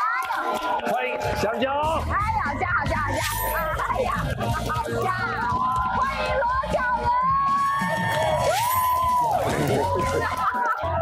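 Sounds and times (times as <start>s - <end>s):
people cheering and whooping: 0.0s - 2.1s, 3.2s - 11.0s
background music: 0.0s - 11.0s.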